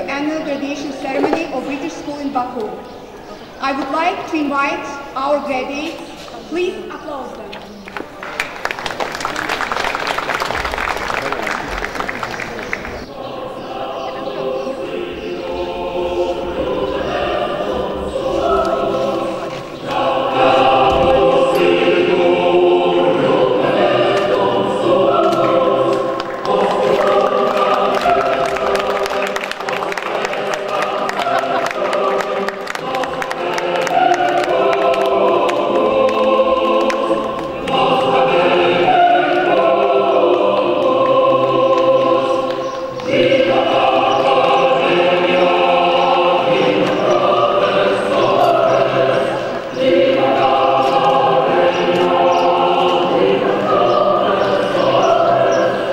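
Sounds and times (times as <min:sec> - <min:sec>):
audience applause: 0:07.9 - 0:13.1, 0:25.2 - 0:37.9
choral music: 0:09.4 - 0:55.9.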